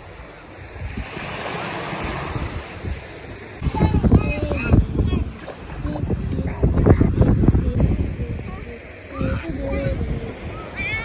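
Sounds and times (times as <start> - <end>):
sea water sloshing: 0.0 - 11.0
wind rumbling on microphone: 0.0 - 11.0
child's voice: 3.6 - 11.0.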